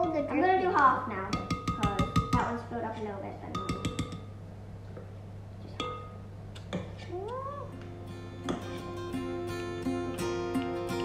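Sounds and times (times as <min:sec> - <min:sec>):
metal spoon clinking on bowl: 0:01.3 - 0:02.5, 0:03.5 - 0:04.3
background music: 0:07.8 - 0:11.0.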